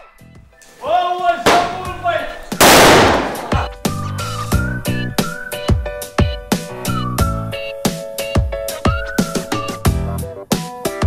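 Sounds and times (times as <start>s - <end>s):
background music with steady beat: 0.0s - 11.0s
firecracker bang: 1.4s - 2.0s, 2.6s - 3.8s.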